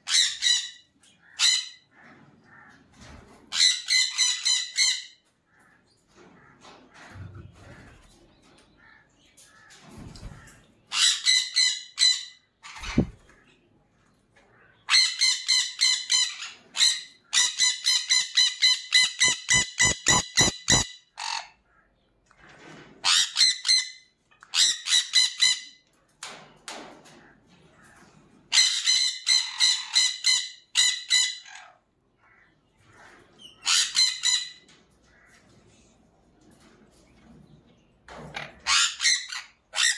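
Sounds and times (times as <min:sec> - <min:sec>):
parrots screeching: 0:00.0 - 0:02.8, 0:03.5 - 0:05.2, 0:14.9 - 0:21.7, 0:28.5 - 0:32.4, 0:33.0 - 0:35.4, 0:38.4 - 0:39.9.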